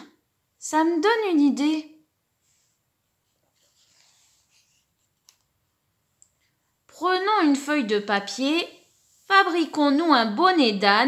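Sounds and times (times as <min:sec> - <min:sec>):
woman's voice: 0:00.0 - 0:02.1, 0:06.9 - 0:11.0.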